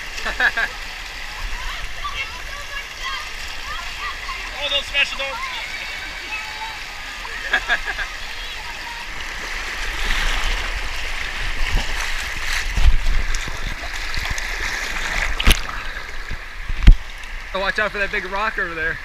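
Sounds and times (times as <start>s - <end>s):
river water rushing and splashing: 0.0s - 19.0s
sharp splashes or knocks: 9.6s - 17.3s.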